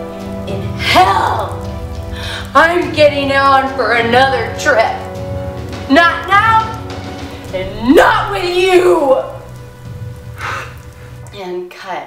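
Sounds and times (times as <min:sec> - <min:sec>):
steady rain: 0:00.0 - 0:11.8
low background music: 0:00.0 - 0:12.0
woman speaking dramatically: 0:00.7 - 0:01.7, 0:02.3 - 0:05.1, 0:05.8 - 0:06.8, 0:07.5 - 0:09.5, 0:11.3 - 0:12.0.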